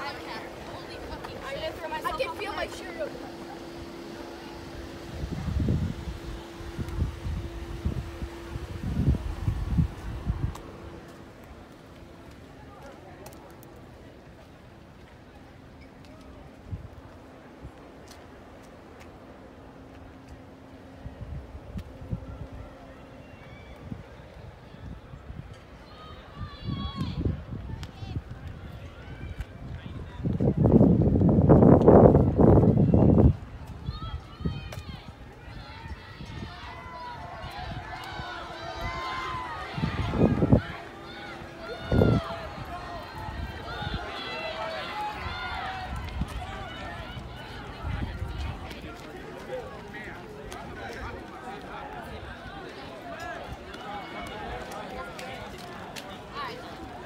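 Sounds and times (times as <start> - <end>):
wind buffeting microphone: 0.0 - 12.3, 20.8 - 57.0
steady low hum: 0.0 - 12.8
footsteps on pavement: 0.0 - 23.4, 27.0 - 57.0
distant crowd voices: 0.0 - 57.0.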